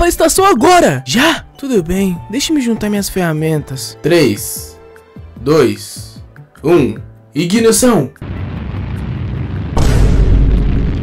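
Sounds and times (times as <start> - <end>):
rocket engine liftoff roar: 8.2 - 11.0.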